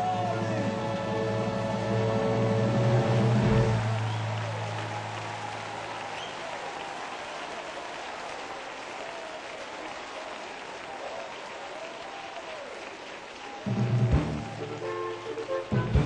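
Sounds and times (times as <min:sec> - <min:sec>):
music low note: 0:00.0 - 0:04.2
congregation applauding: 0:00.0 - 0:16.0.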